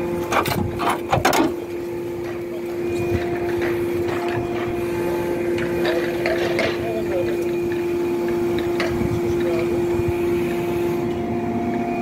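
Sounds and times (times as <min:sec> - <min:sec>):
machine humming: 0:00.0 - 0:12.0.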